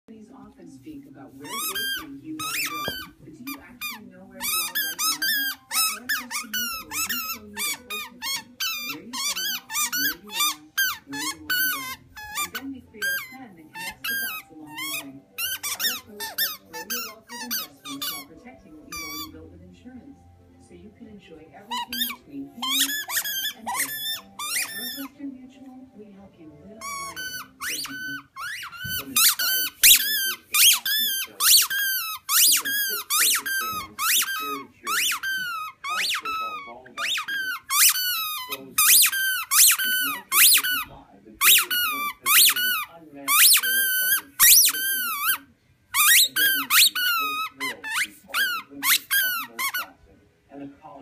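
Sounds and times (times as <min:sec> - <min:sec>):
dog chewing ball: 0:01.3 - 0:19.3, 0:21.5 - 0:25.1, 0:26.8 - 0:45.4, 0:46.0 - 0:49.9
squeaky ball squeaking: 0:01.4 - 0:19.4, 0:21.6 - 0:25.2, 0:26.8 - 0:45.4, 0:46.0 - 0:49.9.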